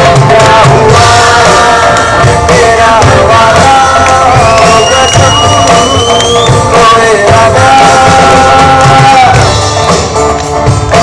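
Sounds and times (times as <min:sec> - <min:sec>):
person singing: 0:00.0 - 0:09.6
live band playing amplified music: 0:00.0 - 0:11.0.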